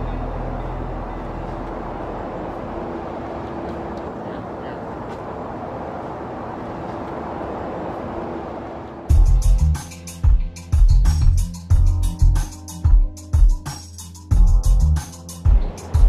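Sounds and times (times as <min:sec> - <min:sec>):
constant even rumble: 0:00.0 - 0:09.8.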